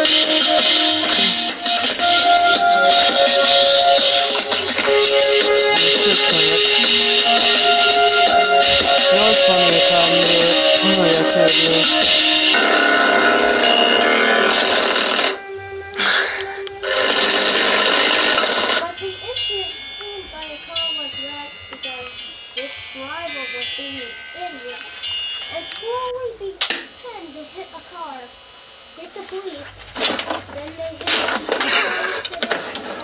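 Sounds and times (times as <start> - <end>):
music through a speaker: 0.0 - 18.9
person singing: 4.9 - 12.4.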